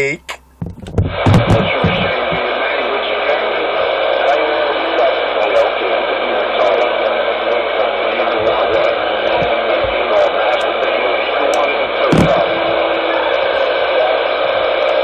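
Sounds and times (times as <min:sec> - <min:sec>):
indistinct voice in static: 0:00.0 - 0:15.0
radio static: 0:00.0 - 0:15.0.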